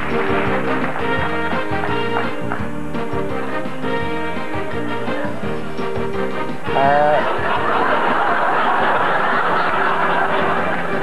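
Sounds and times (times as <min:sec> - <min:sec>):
audience laughing: 0:06.7 - 0:11.0.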